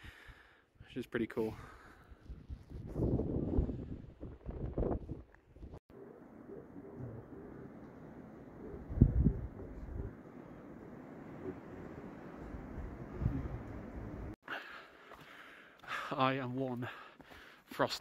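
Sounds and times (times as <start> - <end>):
wind buffeting microphone: 2.2 - 5.8, 8.6 - 14.4.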